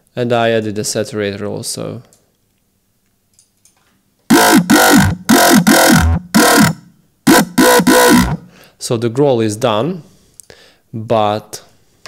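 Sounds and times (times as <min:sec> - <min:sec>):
dubstep growl bass stabs: 0:04.3 - 0:08.5.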